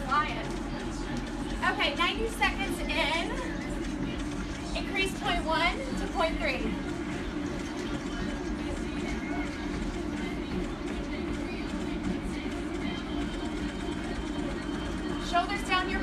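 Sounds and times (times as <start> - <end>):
treadmill hum and belt rumble: 0.0 - 16.0.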